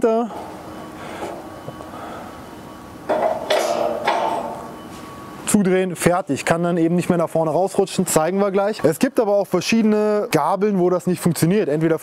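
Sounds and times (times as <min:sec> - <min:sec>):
metallic scraping and clinking: 0:03.1 - 0:05.8.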